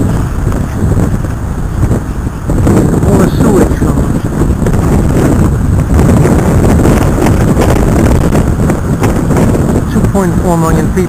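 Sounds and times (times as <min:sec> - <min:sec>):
surf churning: 0:00.0 - 0:11.0
wind buffeting microphone: 0:00.0 - 0:11.0.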